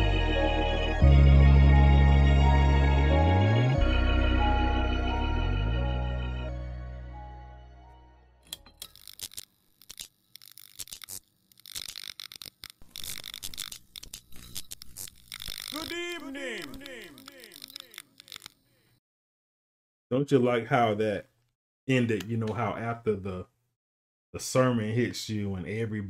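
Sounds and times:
irregular crackling and clicking: 0:08.5 - 0:18.8.

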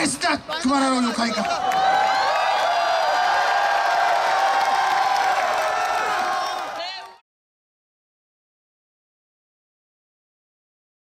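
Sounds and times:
large crowd cheering: 0:00.8 - 0:07.2.

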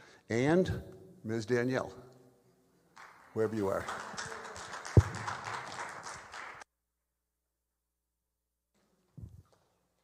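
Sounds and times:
loud microphone thump: 0:05.0 - 0:05.4.

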